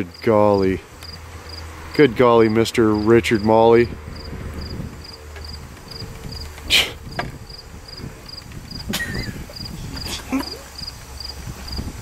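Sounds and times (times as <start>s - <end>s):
cricket chirping: 1.0s - 1.7s, 4.2s - 6.5s, 7.1s - 11.9s.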